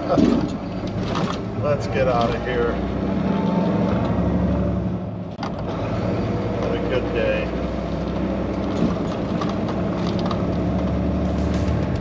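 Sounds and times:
diesel truck engine under load: 0.0 - 12.0.

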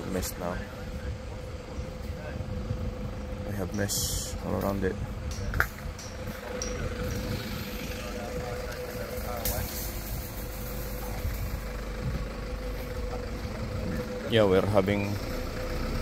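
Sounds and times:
engine idling: 0.0 - 16.0.

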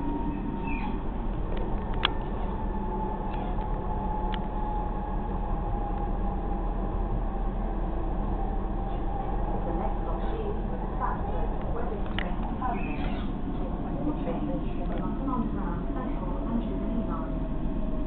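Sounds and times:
faint whine: 0.0 - 18.0
train rumbling on rails: 0.0 - 18.0
click: 1.5 - 2.3, 3.3 - 4.5, 11.6 - 12.5.

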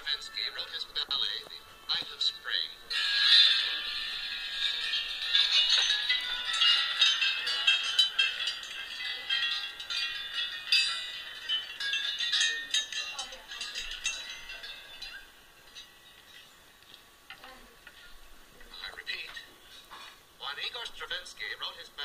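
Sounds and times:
tubular bells ringing: 0.0 - 16.8.

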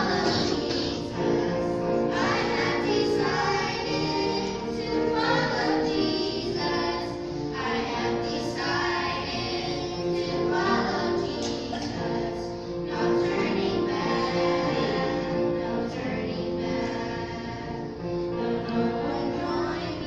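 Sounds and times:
children singing: 0.0 - 20.0.

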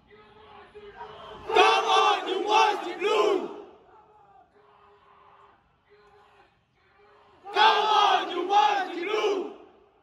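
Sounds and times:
crowd chanting: 0.9 - 3.9, 7.3 - 10.0.

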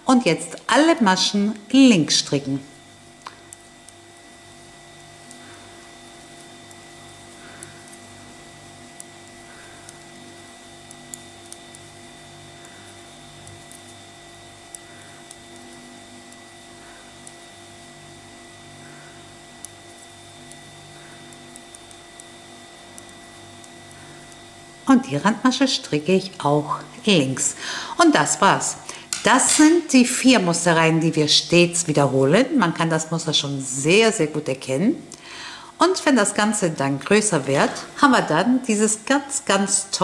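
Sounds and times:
electrical hum: 0.0 - 40.0.

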